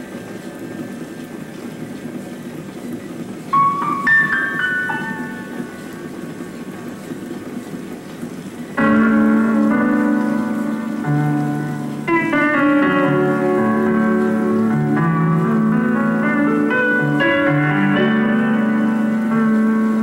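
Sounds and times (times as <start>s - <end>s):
film score on piano: 0.0s - 20.0s
low background noise: 0.0s - 20.0s.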